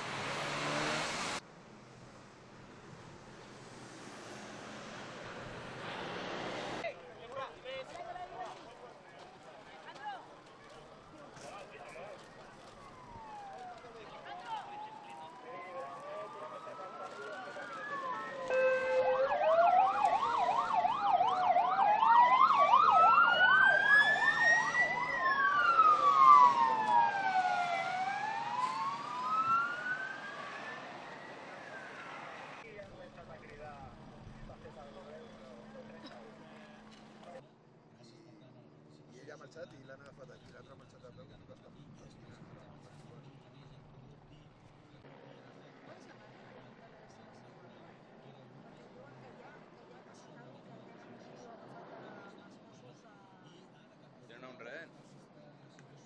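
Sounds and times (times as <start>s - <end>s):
emergency sirens wailing: 10.8s - 37.4s
siren yelp: 12.6s - 32.6s.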